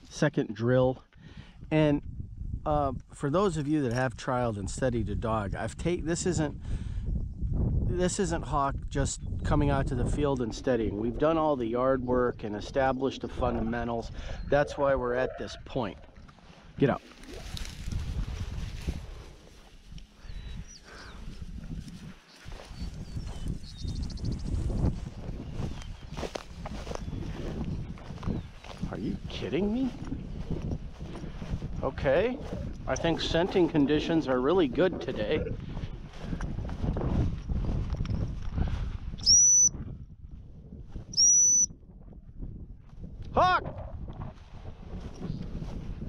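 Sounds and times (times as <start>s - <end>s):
wind buffeting microphone: 1.2s - 46.0s
footsteps through dry grass: 16.3s - 39.0s, 44.2s - 46.0s
high bird chirps: 22.3s - 24.7s, 39.2s - 39.7s, 41.2s - 41.7s
dog whistle blasts: 39.2s - 39.7s, 41.2s - 41.7s.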